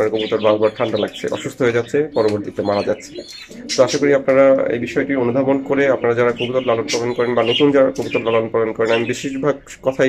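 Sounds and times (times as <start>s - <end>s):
man talking: 0.0s - 10.0s
pigeons cooing: 0.0s - 10.0s.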